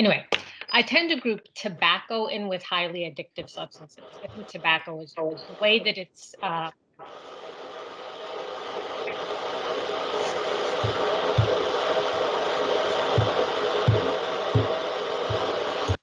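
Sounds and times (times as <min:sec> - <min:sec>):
coffee grinder whirring: 0:07.1 - 0:16.0.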